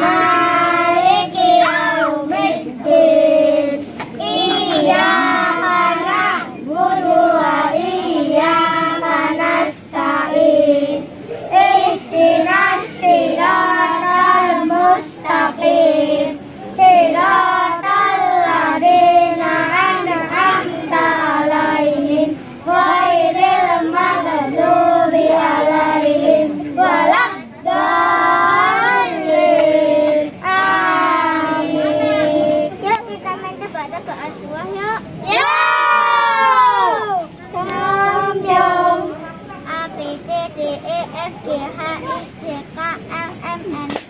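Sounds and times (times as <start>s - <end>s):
children singing in chorus: 0.0s - 32.8s, 35.3s - 42.4s.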